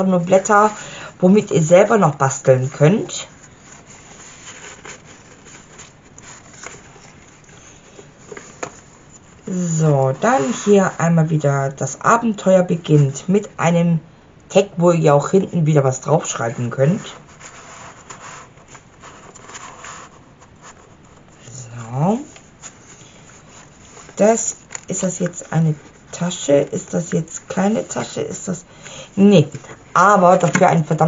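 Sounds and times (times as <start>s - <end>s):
paper rustling and scraping: 1.7s - 11.4s, 16.3s - 31.0s.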